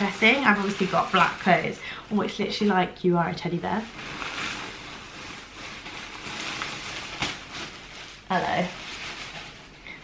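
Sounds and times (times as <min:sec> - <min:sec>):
plastic bag rustling and crinkling: 0:00.0 - 0:10.0.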